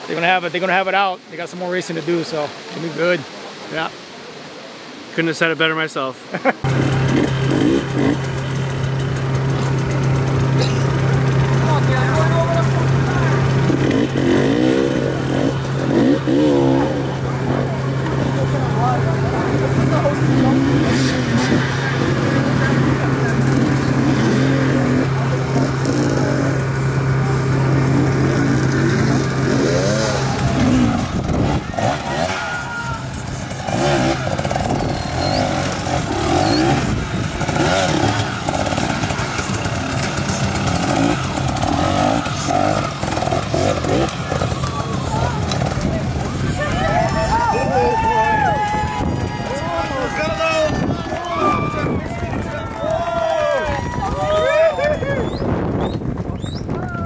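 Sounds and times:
people talking: 0:00.0 - 0:03.9, 0:05.2 - 0:06.6, 0:09.5 - 0:55.4
dirt bike engine revving: 0:06.6 - 0:56.7.

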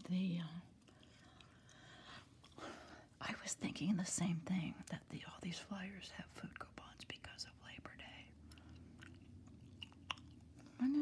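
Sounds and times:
faint low hum: 0:00.0 - 0:11.0
gum chewing: 0:08.3 - 0:11.0.

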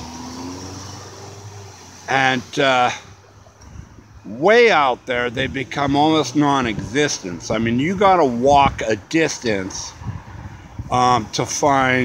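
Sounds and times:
car driving past: 0:00.0 - 0:03.2.

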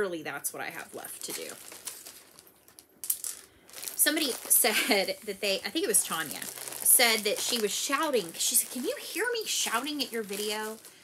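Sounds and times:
small objects rattling: 0:00.9 - 0:11.0
handling noise: 0:01.3 - 0:11.0.

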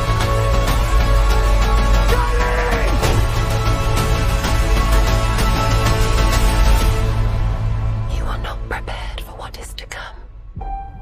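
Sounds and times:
person whispering: 0:08.1 - 0:10.3.

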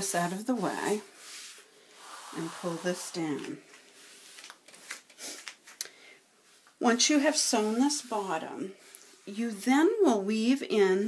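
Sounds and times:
fabric strips sliding on table: 0:00.7 - 0:05.4.

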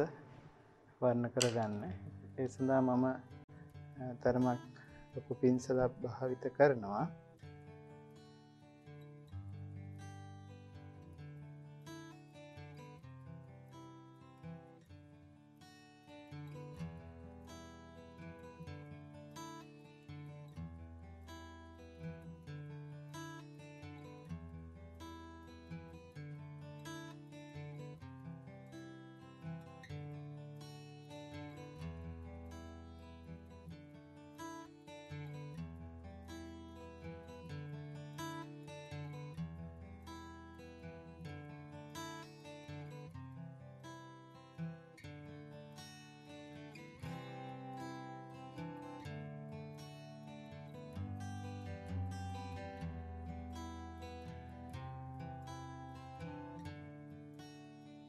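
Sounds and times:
acoustic guitar plucked notes: 0:00.0 - 0:58.0.

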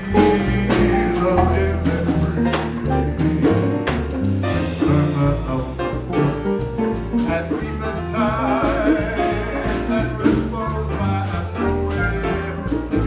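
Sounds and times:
double bass: 0:00.0 - 0:13.0
drums: 0:00.0 - 0:13.0
piano: 0:00.0 - 0:13.0.

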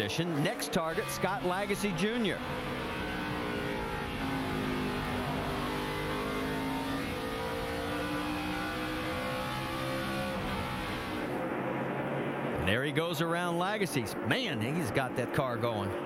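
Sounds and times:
race car engine: 0:00.0 - 0:16.0.

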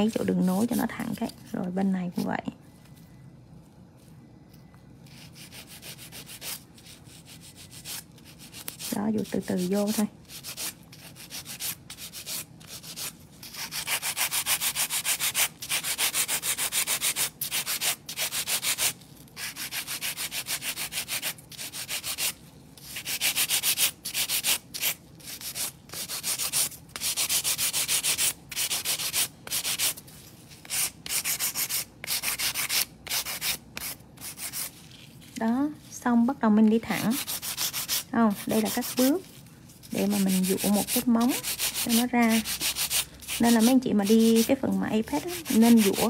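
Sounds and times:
nail file rasping on nails: 0:05.1 - 0:30.0, 0:30.6 - 0:34.8, 0:37.0 - 0:39.3, 0:39.9 - 0:46.0.

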